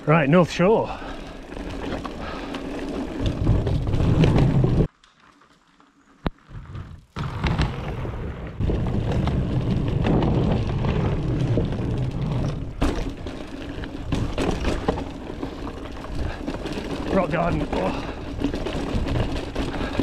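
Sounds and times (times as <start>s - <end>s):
bike tyres rolling: 0.0s - 20.0s
bike rattling and knocking: 0.9s - 4.9s, 8.6s - 20.0s.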